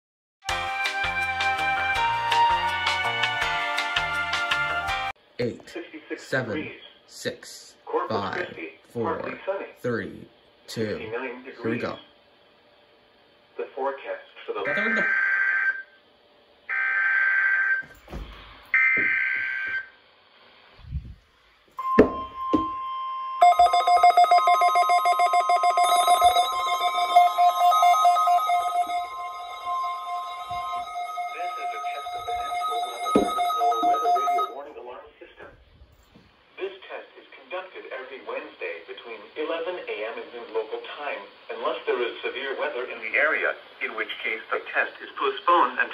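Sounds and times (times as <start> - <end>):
synthesized voice speaking: 14.6 - 15.2
steady warning alarm tone: 14.7 - 16.0, 21.8 - 34.6.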